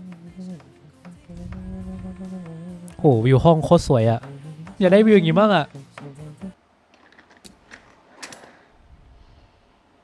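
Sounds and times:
faint low rumble: 1.3 - 3.0.

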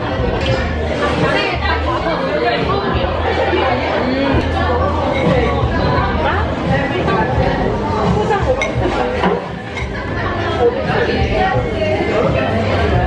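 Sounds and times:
chatter of many people: 0.0 - 13.0.

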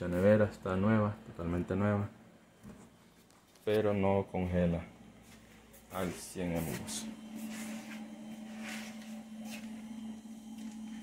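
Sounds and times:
refrigerator compressor humming: 3.8 - 11.0.

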